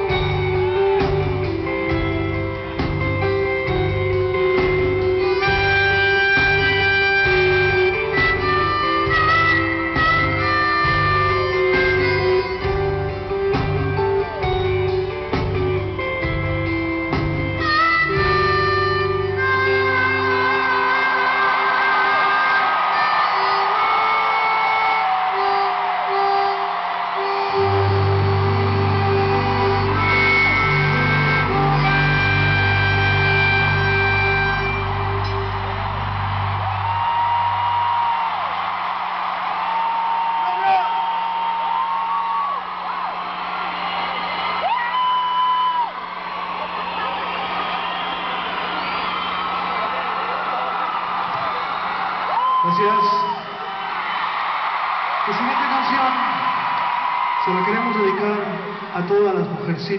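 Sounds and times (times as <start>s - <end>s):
live rock band playing: 0.0s - 59.6s
crowd cheering and whistling: 0.0s - 59.9s.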